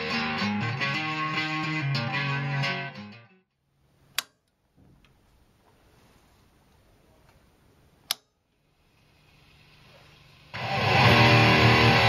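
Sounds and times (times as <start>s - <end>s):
amp hiss and hum: 5.5s - 12.0s
amp switch click: 8.0s - 8.3s.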